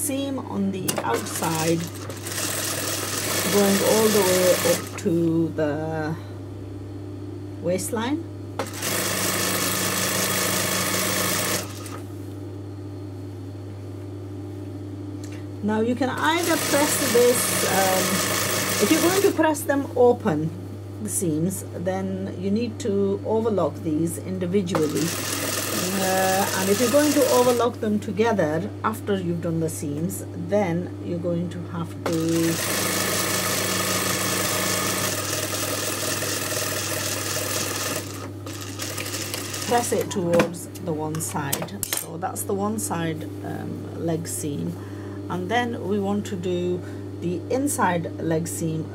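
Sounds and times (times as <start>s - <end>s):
steady motor hum: 0.0s - 48.9s
sewing machine stitching: 0.9s - 5.0s, 8.6s - 12.0s, 16.2s - 19.4s, 24.7s - 27.6s, 32.1s - 40.1s.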